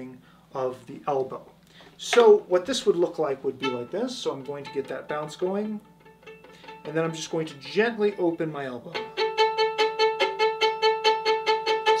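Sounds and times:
violin spiccato bowing: 0:03.0 - 0:12.0.

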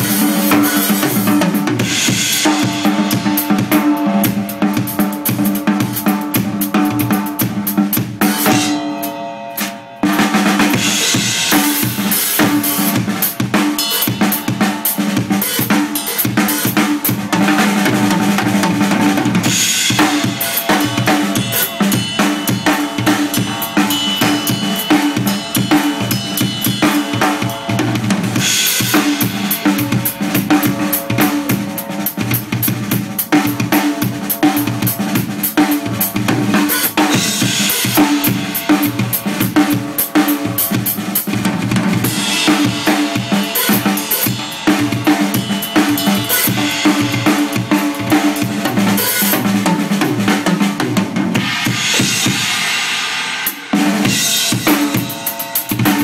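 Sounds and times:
fast drum kit playing: 0:00.0 - 0:56.0
cymbal crashes: 0:08.3 - 0:17.2, 0:19.4 - 0:41.2, 0:42.0 - 0:49.5, 0:51.4 - 0:56.0.

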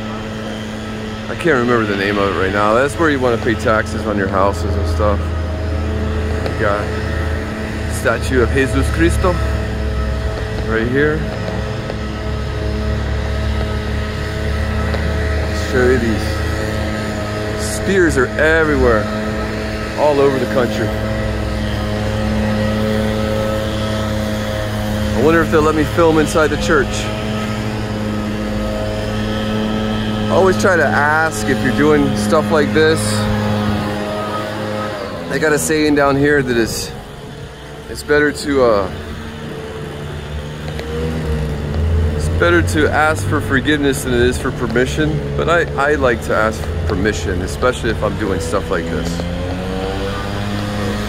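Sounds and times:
steady mechanical hum: 0:00.0 - 0:51.0.

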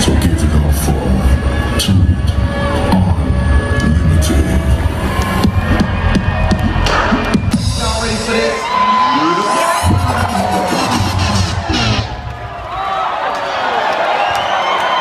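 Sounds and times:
loud dance music: 0:00.0 - 0:12.7
crowd cheering and screaming: 0:03.8 - 0:15.0.

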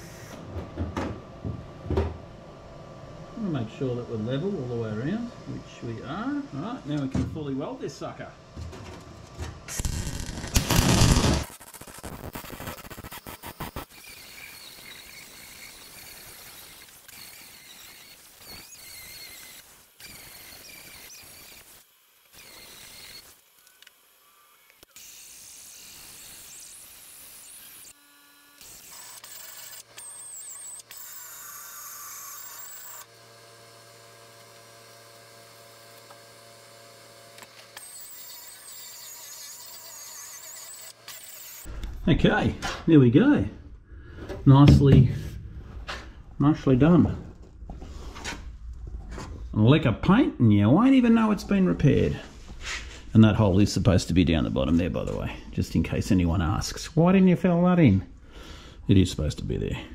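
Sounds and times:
mig welder crackling and hissing: 0:00.0 - 0:00.4, 0:09.2 - 0:24.0.

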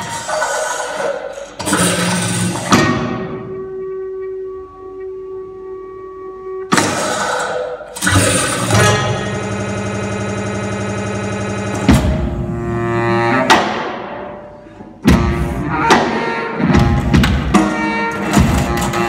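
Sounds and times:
buzzing tone with overtones: 0:06.6 - 0:13.5
percussion hits: 0:06.7 - 0:09.7, 0:10.6 - 0:12.6, 0:15.0 - 0:19.0
baritone saxophone: 0:14.3 - 0:19.0.

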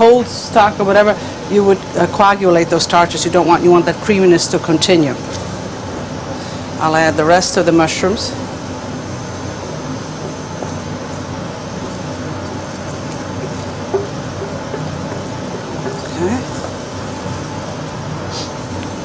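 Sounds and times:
rushing gas stove noise: 0:00.0 - 0:19.0.

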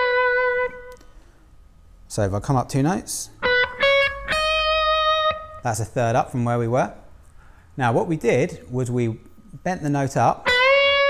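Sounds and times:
electric guitar sustained note: 0:00.0 - 0:01.0, 0:03.4 - 0:05.9, 0:10.4 - 0:11.0.

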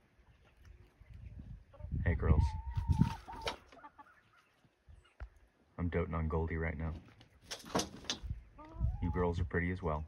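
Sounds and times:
hen clucking: 0:00.2 - 0:05.4, 0:08.1 - 0:09.5.

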